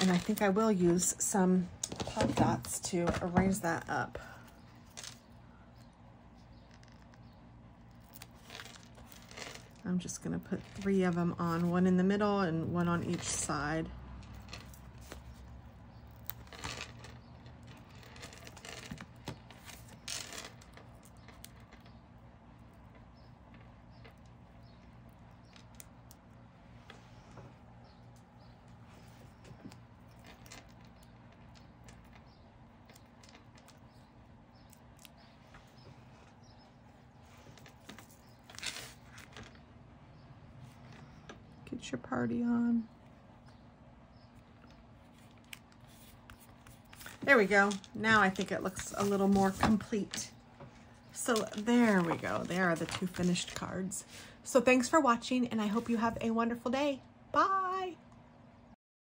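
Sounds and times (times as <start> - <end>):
faint room hum: 0.0 - 58.8
paper rustling: 45.1 - 50.2, 51.3 - 53.6.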